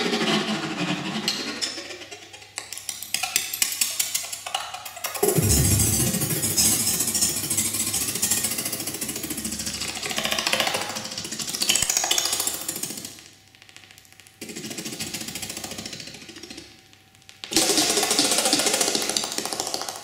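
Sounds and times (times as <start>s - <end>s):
pulsing granular synthesizer: 5.2s - 9.9s.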